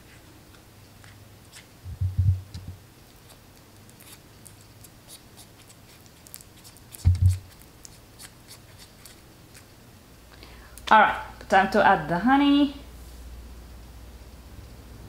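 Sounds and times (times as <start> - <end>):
dull low thumps: 1.9 - 2.8, 7.1 - 7.4.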